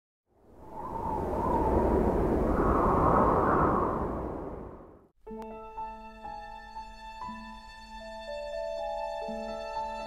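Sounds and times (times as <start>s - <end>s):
whoosh with low rumble: 0.4s - 5.1s.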